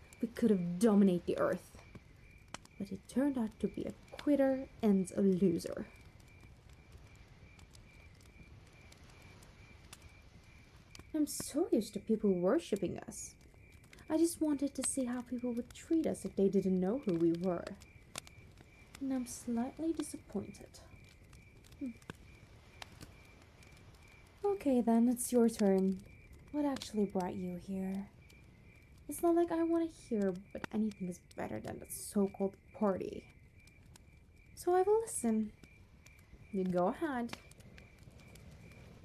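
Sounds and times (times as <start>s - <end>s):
cricket chirping: 0.0s - 39.0s
fire crackling: 0.0s - 39.0s.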